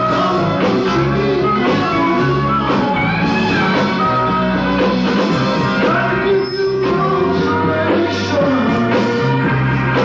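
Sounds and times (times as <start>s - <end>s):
electric guitar lead line bending: 0.0s - 10.0s
rock band playing live: 0.0s - 10.0s.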